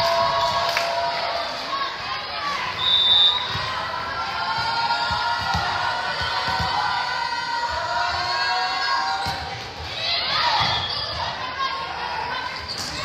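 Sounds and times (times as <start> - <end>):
chatter and calls of people: 0.0 - 13.0
volleyball thumps: 4.5 - 6.8.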